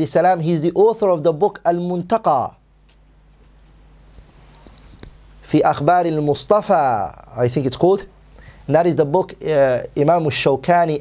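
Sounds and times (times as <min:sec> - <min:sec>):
low room hum: 0:00.0 - 0:11.0
soft clicks: 0:02.8 - 0:05.2.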